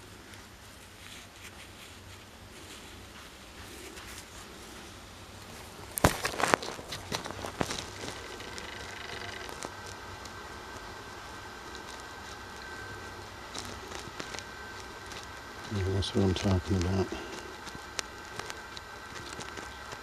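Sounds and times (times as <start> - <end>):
hands scraping gritty dirt: 0.0 - 10.3, 11.6 - 20.0.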